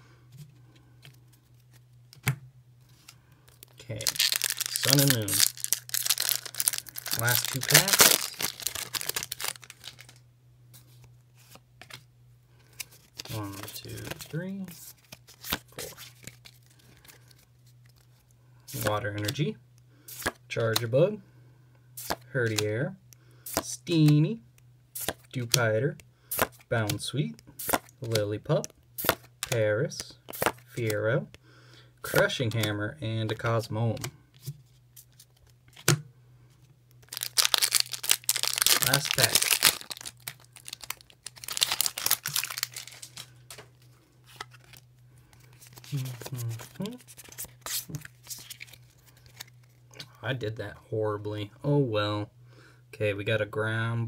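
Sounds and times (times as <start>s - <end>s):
foil wrapper crinkling and tearing: 3.5s - 10.2s, 37.0s - 43.6s
cards clicking: 27.6s - 29.6s.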